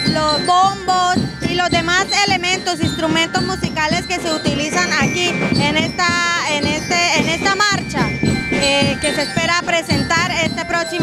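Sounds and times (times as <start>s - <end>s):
bell lyres ringing: 0.0s - 11.0s
marching band playing: 0.0s - 11.0s.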